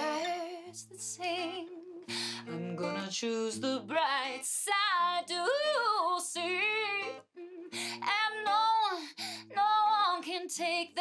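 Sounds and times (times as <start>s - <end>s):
strummed acoustic guitar: 0.0s - 11.0s
woman singing: 0.0s - 11.0s.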